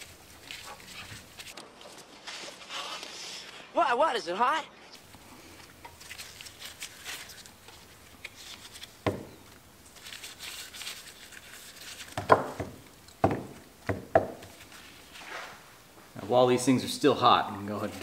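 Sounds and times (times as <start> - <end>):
faint rustling: 4.9 - 13.0
rubber parts knocking and squeaking: 5.0 - 14.8.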